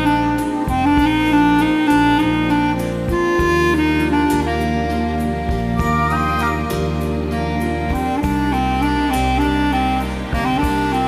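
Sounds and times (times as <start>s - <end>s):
steady bass line: 0.0s - 11.0s
sustained wind melody: 4.4s - 7.8s.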